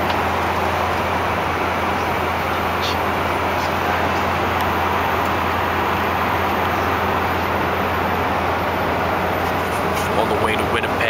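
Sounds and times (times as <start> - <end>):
engine and airflow rush: 0.0 - 11.0
low hum: 0.0 - 11.0.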